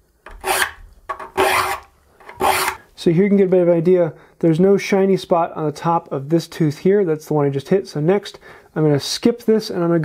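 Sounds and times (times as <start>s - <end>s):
file rasping on saw teeth: 0.3s - 2.8s.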